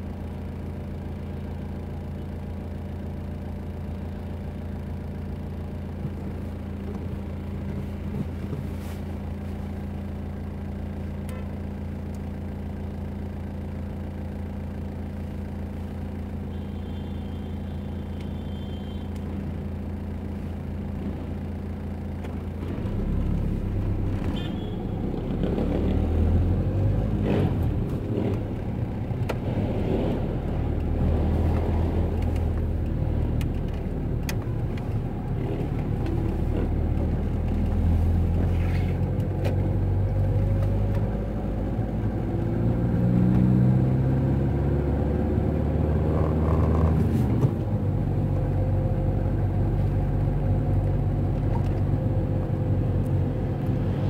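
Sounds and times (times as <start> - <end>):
road rumble: 0.0 - 54.0
car engine accelerating: 18.1 - 54.0.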